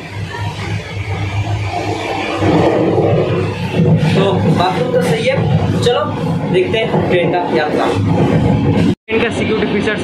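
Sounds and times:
train rumble and rushing: 0.0 - 10.0.

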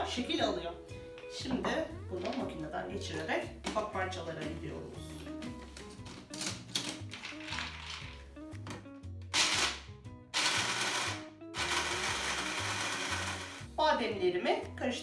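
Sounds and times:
background music: 0.0 - 15.0
blender grinding almonds: 9.4 - 9.8, 10.4 - 13.7.

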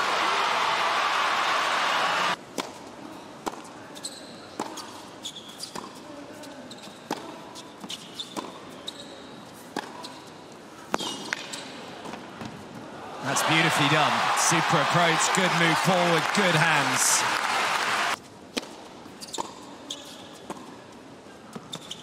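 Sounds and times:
sneaker squeaks on court: 4.0 - 6.0, 7.8 - 10.3, 11.0 - 11.8, 19.2 - 20.6, 21.6 - 22.0.

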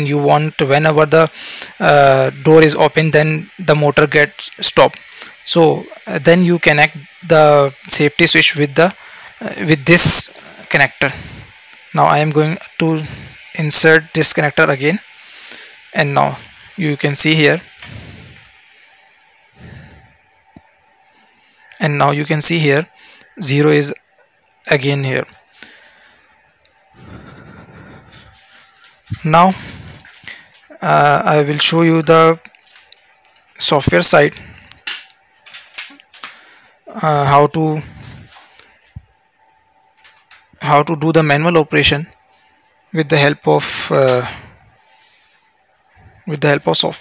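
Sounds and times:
faint steady hum: 0.0 - 47.0.

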